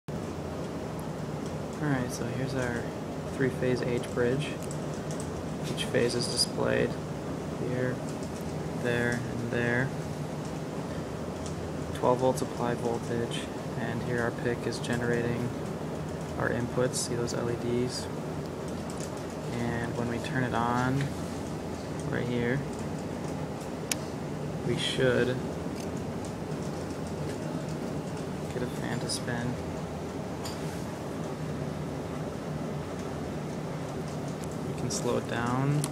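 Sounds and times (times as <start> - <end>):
room hum and hiss: 0.1 - 35.9.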